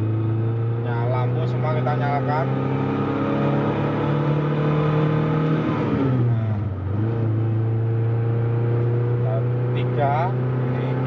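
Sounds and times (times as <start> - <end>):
car engine accelerating: 0.0 - 11.0.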